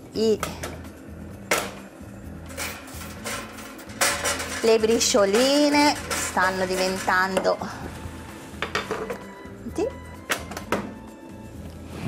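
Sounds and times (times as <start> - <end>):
background music: 0.0 - 12.0
oven door and tray knocking: 2.5 - 7.6.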